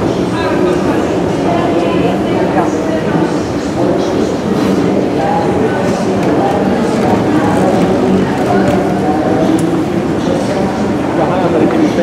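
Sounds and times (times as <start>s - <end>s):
indistinct voices: 0.0s - 12.0s
rumble and hiss of trains: 0.0s - 12.0s.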